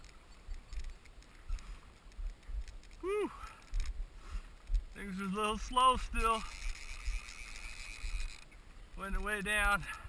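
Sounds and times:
faint steady hiss: 0.0 - 10.0
wind rumbling on microphone: 0.0 - 10.0.

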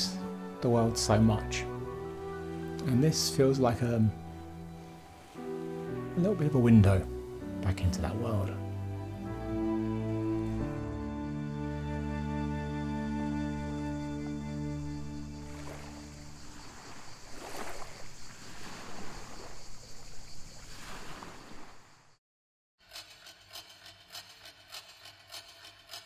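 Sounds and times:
soft slow background music: 0.0 - 16.9
small waves lapping a shore: 14.8 - 22.2.

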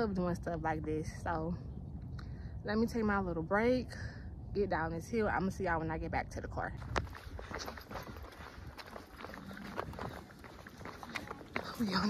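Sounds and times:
footsteps on rock: 6.8 - 12.0.

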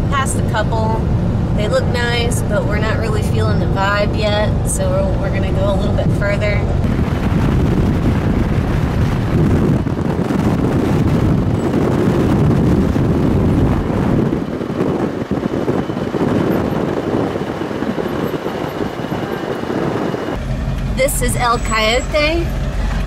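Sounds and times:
truck road noise rumble: 0.0 - 23.0
wind buffeting microphone: 0.0 - 23.0.

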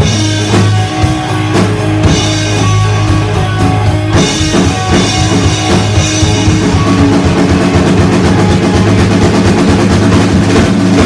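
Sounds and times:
bass guitar: 0.0 - 11.0
drum kit strokes: 0.0 - 11.0
electric guitar: 0.0 - 11.0.

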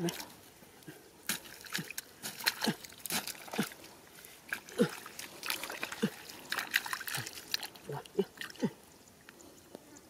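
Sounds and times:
mud squelching: 0.0 - 8.8
stick scraping wet mud: 1.2 - 7.8.

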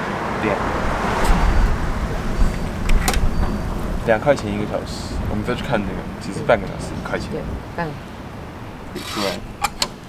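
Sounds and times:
traffic rumble from passing cars: 0.0 - 10.0.

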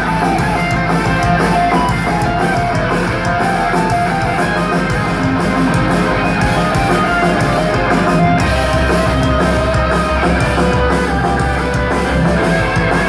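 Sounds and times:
drum kit: 0.0 - 13.0
electric guitars: 0.0 - 13.0
heavy metal band playing live: 0.0 - 13.0.

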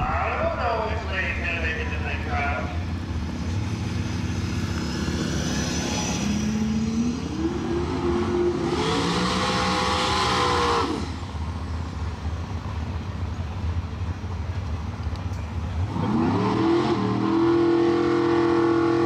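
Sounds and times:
tires spinning on pavement: 1.9 - 19.0
pickup engine revving: 2.7 - 11.9, 15.6 - 19.0.

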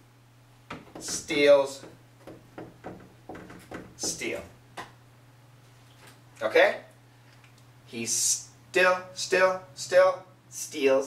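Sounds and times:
steady low hum: 0.0 - 11.0
marker writing on whiteboard: 0.8 - 1.4.

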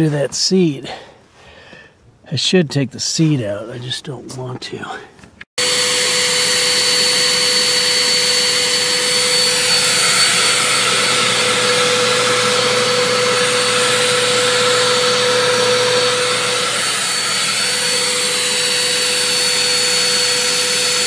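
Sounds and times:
blower high whine: 5.6 - 21.0.

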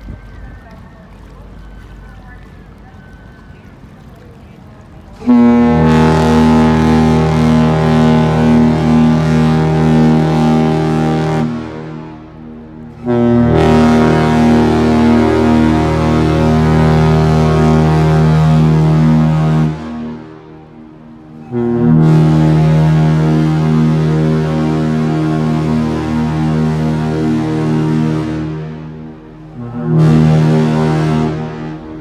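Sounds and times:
ship's horn blasts: 5.2 - 32.0.

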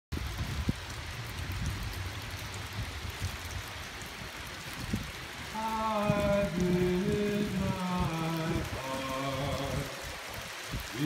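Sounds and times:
low uneven rumble: 0.2 - 11.0
water dripping off rock: 0.3 - 11.0.

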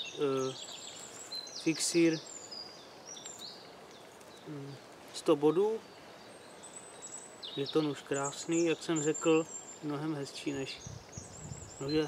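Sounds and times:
light outdoor hiss: 0.0 - 12.0
small birds chirping: 0.0 - 12.0.

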